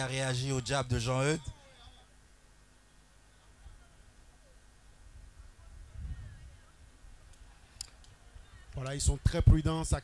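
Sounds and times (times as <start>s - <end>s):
man commentating: 0.0s - 1.9s.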